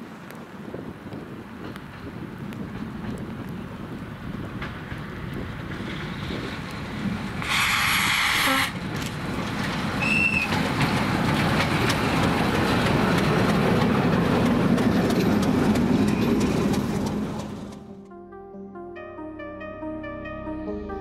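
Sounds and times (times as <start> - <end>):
wheel clatter on rails: 1.6 - 17.8.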